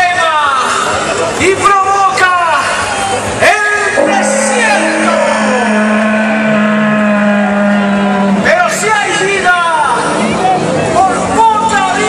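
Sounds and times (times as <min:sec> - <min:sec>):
gliding shouted sounds: 0:03.7 - 0:08.5
amplified voice holding a note: 0:03.9 - 0:07.8.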